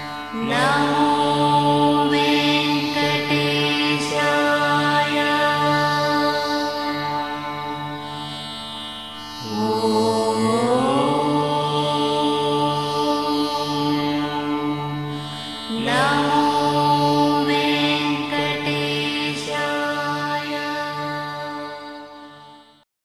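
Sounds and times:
long held melody notes: 0:00.0 - 0:22.2
steady drone: 0:00.0 - 0:22.7.

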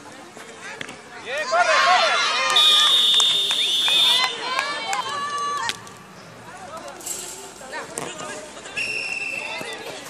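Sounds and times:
long referee whistle blast: 0:02.6 - 0:04.3
women shouting and cheering: 0:04.0 - 0:05.8.

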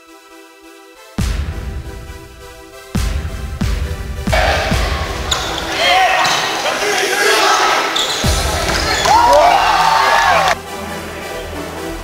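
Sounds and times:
volleyball being struck: 0:04.3 - 0:06.8
players and spectators shouting: 0:04.3 - 0:10.6
shoes squealing on hardwood floor: 0:04.4 - 0:10.5.

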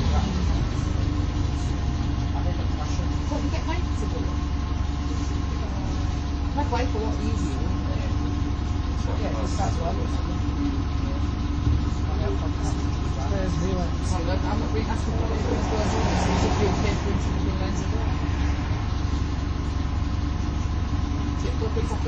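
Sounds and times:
bus diesel engine rumble: 0:00.0 - 0:22.0
passengers talking: 0:00.0 - 0:22.0.

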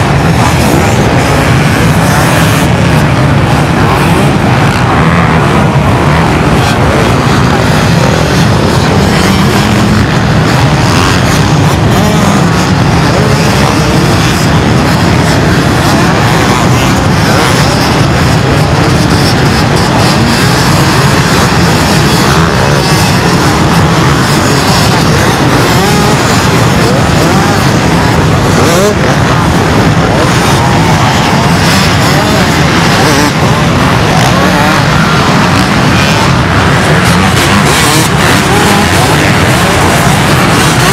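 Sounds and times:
massed motorbike engine din: 0:00.0 - 0:40.9
single motorbike revving: 0:00.0 - 0:40.9.

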